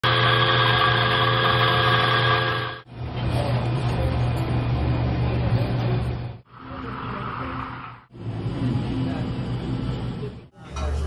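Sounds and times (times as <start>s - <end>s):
coffee grinder motor whining: 0.0s - 2.8s
espresso machine pump hum: 0.0s - 2.8s.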